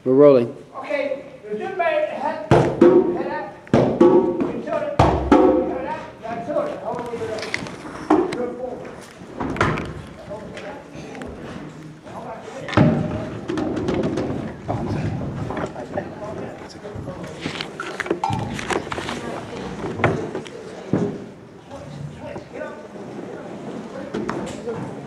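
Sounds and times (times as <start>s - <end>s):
people talking: 4.4s - 9.0s, 10.2s - 13.4s, 14.7s - 25.0s.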